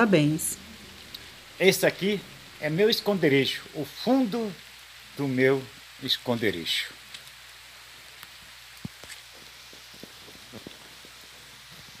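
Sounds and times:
light rain hiss: 0.0 - 12.0
raindrops ticking: 0.0 - 12.0.

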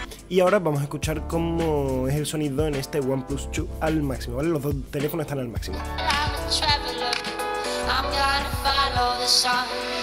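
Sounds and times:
song through phone loudspeaker: 0.0 - 10.0.

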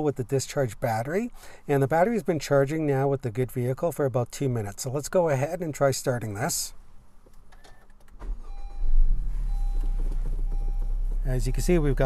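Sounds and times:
car engine cranking and idling: 7.6 - 12.0.

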